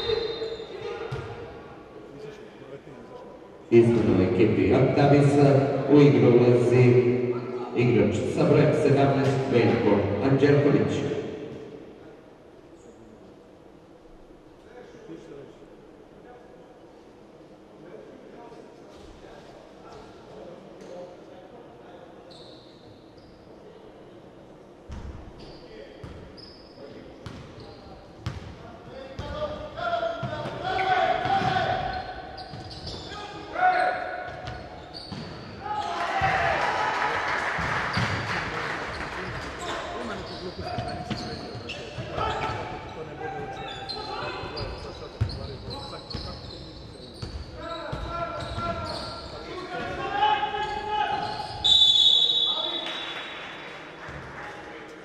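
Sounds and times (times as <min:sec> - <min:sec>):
referee's whistle: 0:00.0 - 0:00.7, 0:50.7 - 0:53.4
crowd noise: 0:00.0 - 0:25.7, 0:29.5 - 0:55.0
ball bouncing on hardwood court: 0:01.1 - 0:01.4
shoes squeaking: 0:30.6 - 0:35.9, 0:38.9 - 0:50.0.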